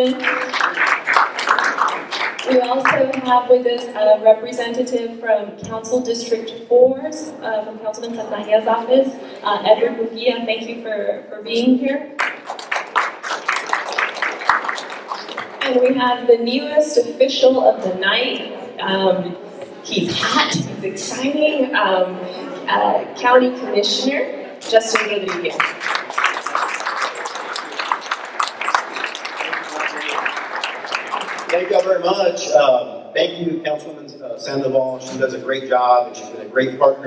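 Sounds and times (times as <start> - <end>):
audience clapping: 0.0 - 3.9, 12.2 - 15.7, 24.6 - 32.2
voices: 2.4 - 12.1, 15.6 - 25.7.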